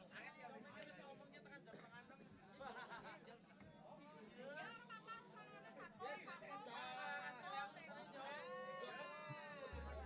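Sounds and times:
deep low hum: 9.8s - 10.0s.

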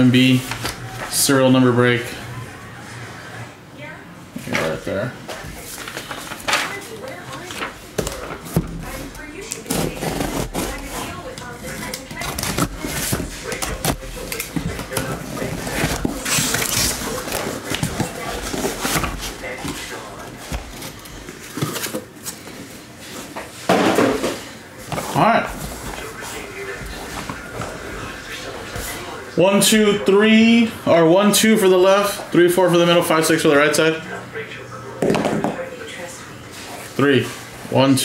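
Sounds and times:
cardboard scraping and rustling: 5.6s - 22.5s.

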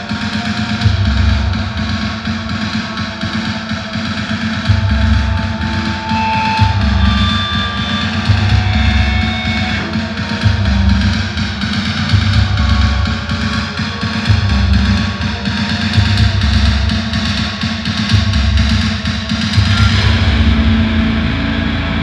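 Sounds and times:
bass drum pounding: 0.0s - 22.0s
distorted guitars: 0.0s - 22.0s
bass guitar: 4.6s - 11.4s, 12.1s - 13.3s, 19.6s - 22.0s.

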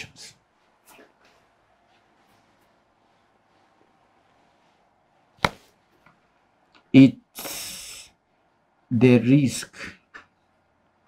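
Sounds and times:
sharp tap: 5.4s - 5.7s.

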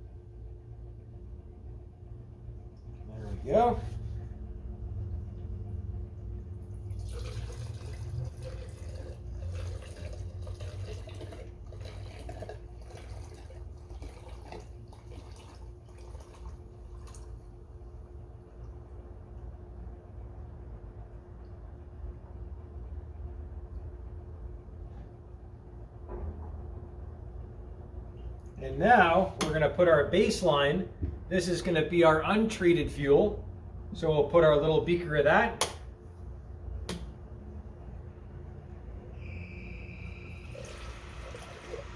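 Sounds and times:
diesel pouring into glass beaker: 6.8s - 17.4s, 39.2s - 41.9s.

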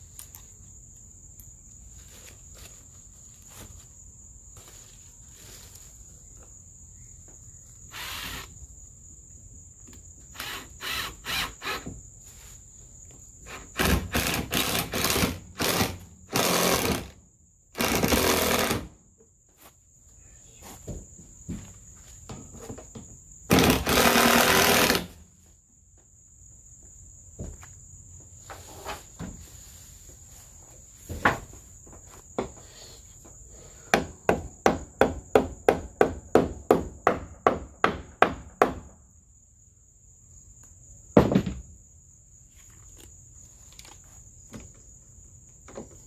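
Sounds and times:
high insect trill: 0.0s - 46.0s.

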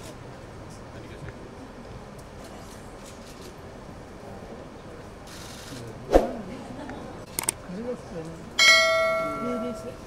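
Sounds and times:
bright bell ding: 8.6s - 10.0s.

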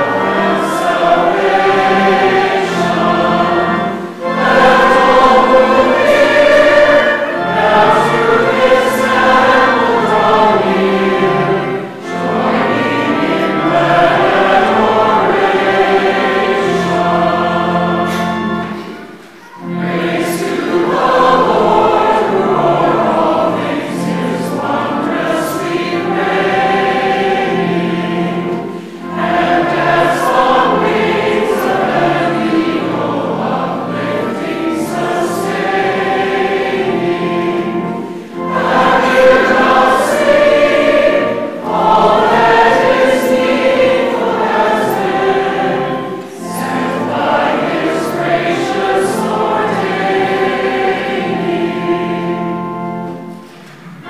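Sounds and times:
congregation singing a hymn: 0.0s - 54.0s
pipe organ low notes: 0.0s - 54.0s.

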